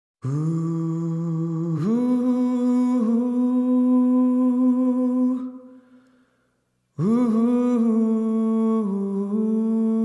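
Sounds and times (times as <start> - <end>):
person singing a long ooh: 0.2 - 6.0, 7.0 - 10.0.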